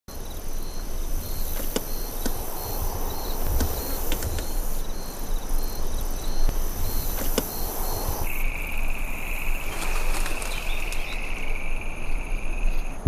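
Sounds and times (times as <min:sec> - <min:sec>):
insects chirping: 0:00.1 - 0:13.0.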